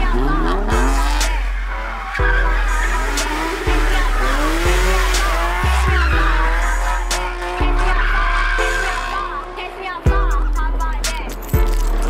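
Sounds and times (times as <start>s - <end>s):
car engine revving: 0.0s - 12.0s
hip-hop music with deep bass: 0.0s - 12.0s
tyres squealing: 0.1s - 10.0s.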